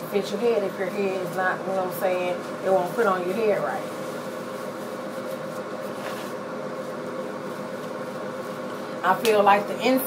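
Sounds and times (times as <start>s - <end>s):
steady mechanical hum: 0.0s - 10.0s.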